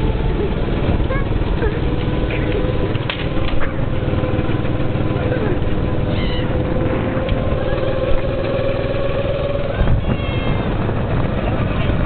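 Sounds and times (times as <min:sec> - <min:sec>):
go-kart engine running: 0:00.0 - 0:12.0.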